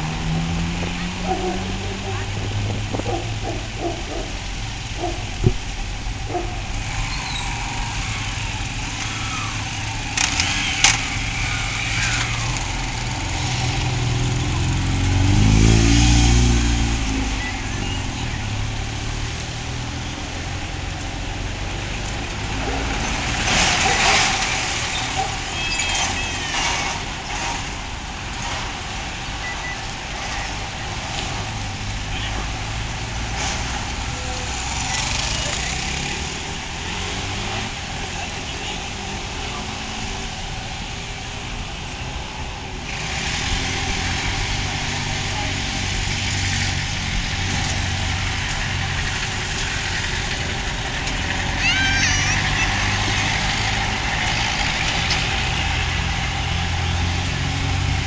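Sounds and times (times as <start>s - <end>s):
traffic rumble: 0.0s - 58.0s
vehicle passing: 0.0s - 58.0s.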